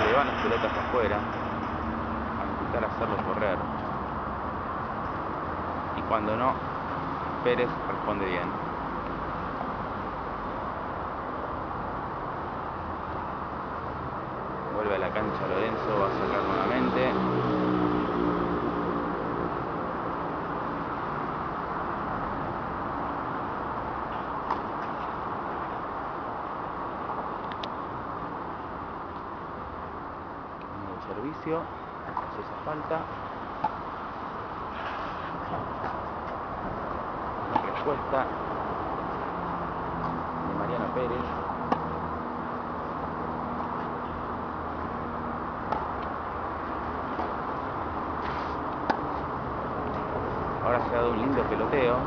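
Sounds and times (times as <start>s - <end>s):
road traffic hum: 0.0s - 52.0s
tennis rackets striking ball: 33.5s - 34.0s, 41.6s - 42.2s, 45.6s - 47.4s, 48.2s - 49.2s.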